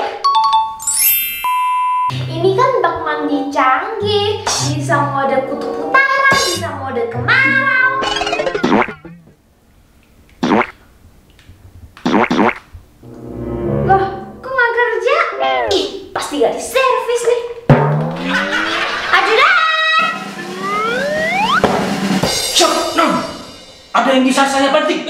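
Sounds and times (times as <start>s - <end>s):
music: 0.3s - 9.3s, 13.0s - 14.6s, 17.6s - 25.0s
sliding bending tones and boings: 7.9s - 9.4s, 17.6s - 19.4s
rising whistle-like glides: 20.0s - 21.7s.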